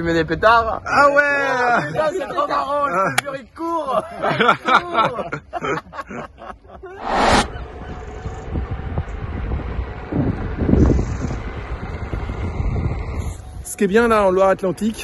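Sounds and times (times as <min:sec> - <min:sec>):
loud noise burst: 0:07.0 - 0:07.6.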